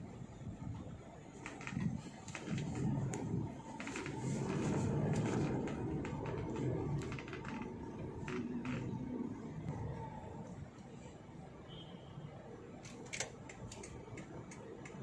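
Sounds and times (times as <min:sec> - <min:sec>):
car rumbling inside cabin: 0:00.0 - 0:11.5
light clicks and ticks: 0:12.8 - 0:15.0.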